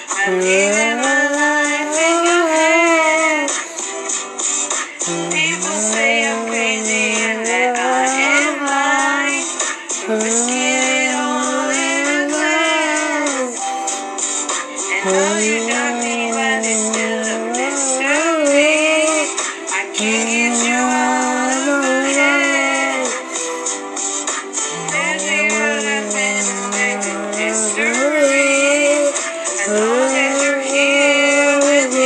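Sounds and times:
song with sung vocals: 0:00.0 - 0:32.0.

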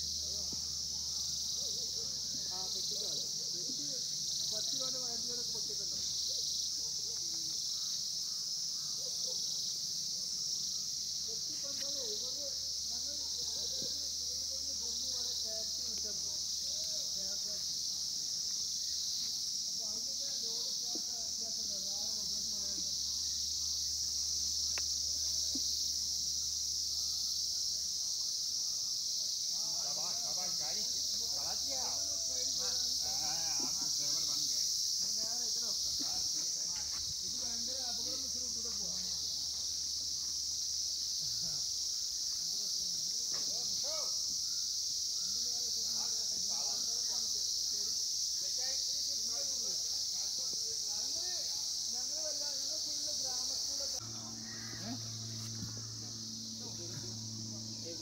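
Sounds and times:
insect chorus: 0:00.0 - 0:58.0.

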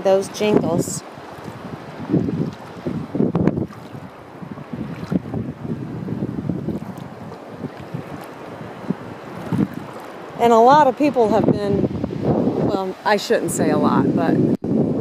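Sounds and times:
water sloshing around wading legs: 0:00.0 - 0:11.4
wind buffeting microphone: 0:00.0 - 0:15.0.

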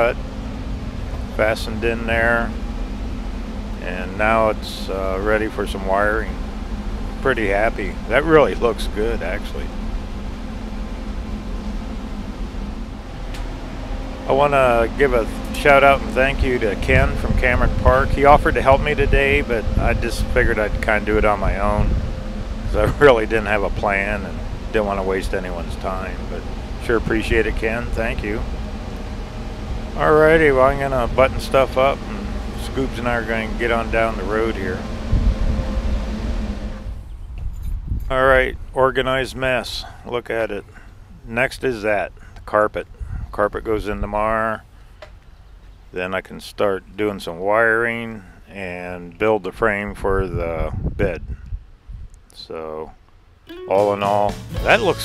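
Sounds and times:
low rumble: 0:00.0 - 0:39.6
electric fan whirring: 0:00.0 - 0:55.0
low mechanical hum: 0:00.0 - 0:55.0.

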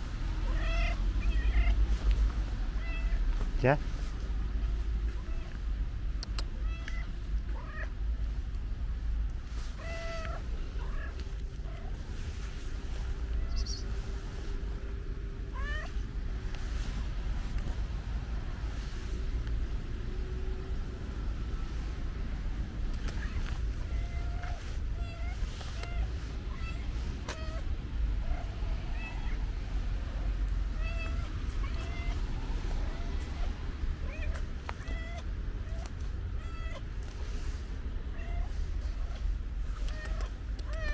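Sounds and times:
steady low rumble: 0:00.0 - 0:40.9
cat meowing: 0:00.4 - 0:01.9, 0:06.6 - 0:08.0, 0:09.7 - 0:11.9, 0:15.5 - 0:16.0, 0:23.0 - 0:27.7, 0:30.7 - 0:36.9, 0:38.1 - 0:40.9.

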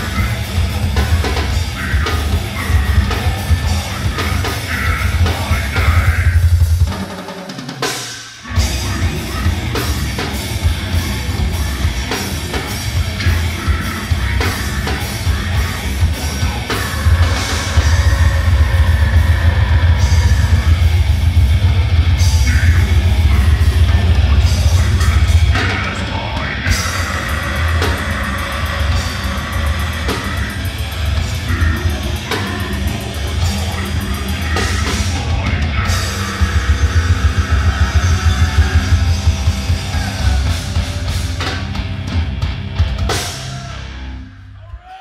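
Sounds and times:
distorted electric guitar: 0:00.0 - 0:44.9
drum kit: 0:00.0 - 0:45.0
heavy metal band playing live: 0:00.0 - 0:45.0.

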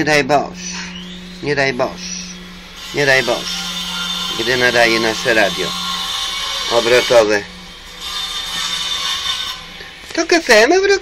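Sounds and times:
mechanical whirring with hiss: 0:00.5 - 0:11.0.

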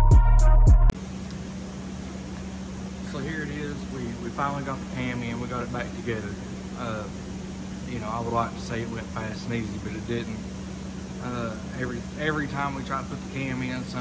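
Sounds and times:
steady low hum: 0:00.0 - 0:14.0
man talking: 0:03.1 - 0:07.2, 0:07.9 - 0:10.5, 0:11.2 - 0:14.0.

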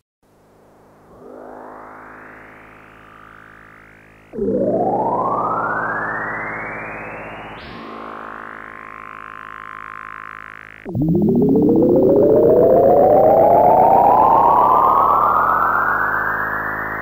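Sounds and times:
synth drone: 0:00.3 - 0:17.0
rising synth tone: 0:00.9 - 0:17.0.

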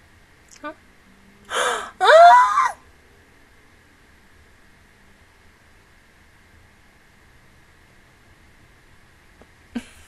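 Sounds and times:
wavering vocal cry: 0:01.5 - 0:02.8
woman gasping: 0:01.5 - 0:02.8.

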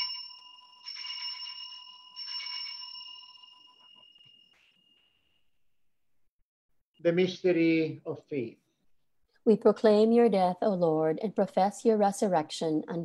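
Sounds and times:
altar bell ringing: 0:00.0 - 0:05.4.

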